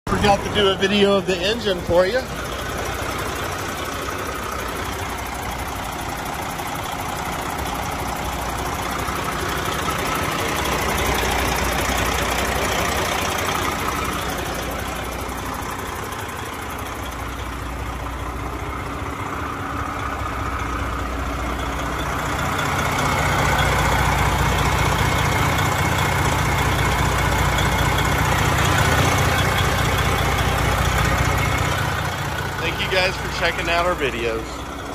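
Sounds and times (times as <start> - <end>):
diesel engine idling: 0.0 - 34.9.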